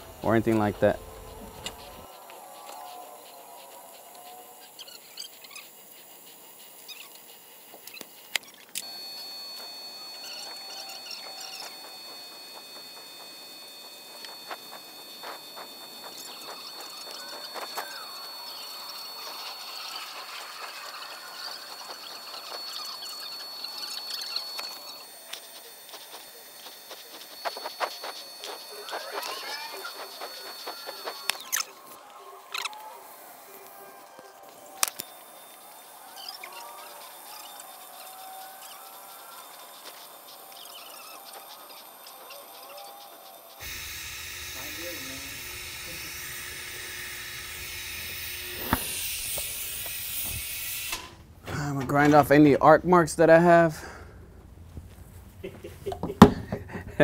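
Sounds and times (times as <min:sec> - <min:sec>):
welding arc crackling: 0:00.0 - 0:51.2
thin high whine: 0:00.0 - 0:57.0.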